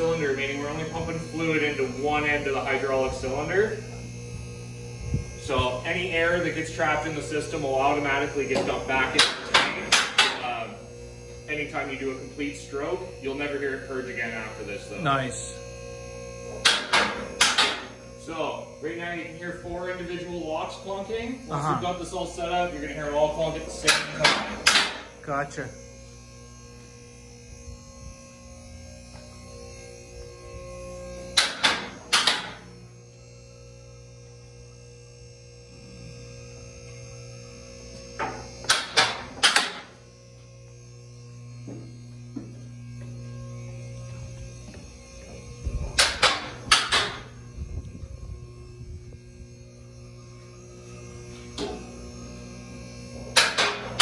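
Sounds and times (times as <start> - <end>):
hydraulic pump humming: 0.0 - 54.0.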